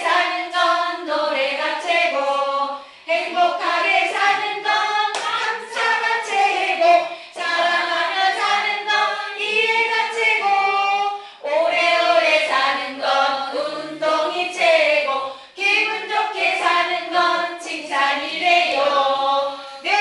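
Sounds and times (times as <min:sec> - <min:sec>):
group singing unaccompanied: 0:00.0 - 0:20.0
hand claps: 0:03.9 - 0:06.6.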